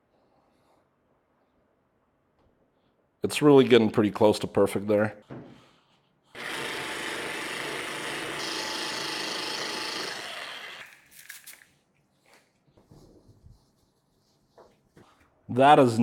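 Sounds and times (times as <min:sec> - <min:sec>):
orbital polisher running: 0:06.4 - 0:11.0.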